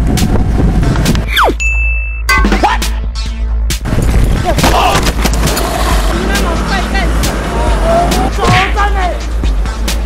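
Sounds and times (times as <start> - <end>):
low road rumble: 0.0 - 1.6, 2.4 - 10.0.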